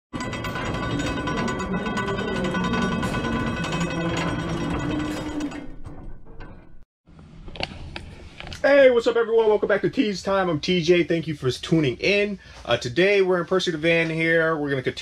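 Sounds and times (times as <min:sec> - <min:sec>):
gear and ratchet clicking: 0:00.2 - 0:05.9.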